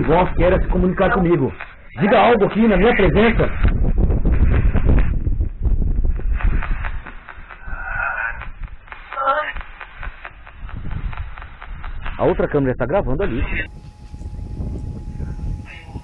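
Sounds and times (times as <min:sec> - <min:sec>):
choppy radio static sweeping: 0:00.0 - 0:05.2, 0:06.1 - 0:16.0
voice-like fragments: 0:07.4 - 0:10.7.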